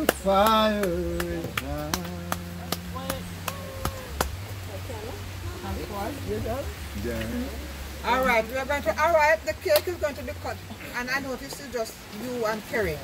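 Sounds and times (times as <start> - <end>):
soft voices: 0.0 - 9.5.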